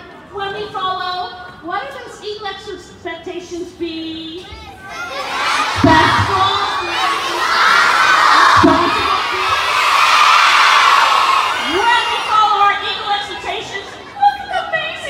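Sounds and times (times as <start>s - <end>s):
children cheering and shouting: 4.7s - 13.6s.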